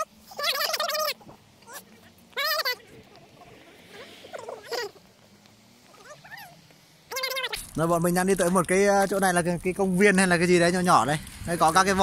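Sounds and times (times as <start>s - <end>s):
distant duck calls: 0.0s - 5.1s, 5.9s - 7.7s.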